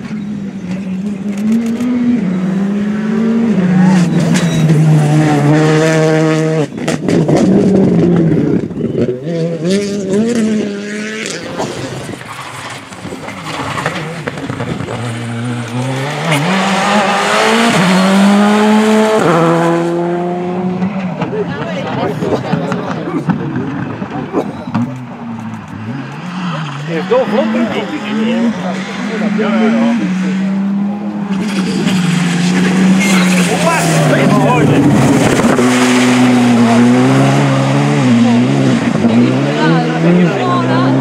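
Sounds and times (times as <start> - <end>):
rally car engines revving high: 0.0 - 41.0.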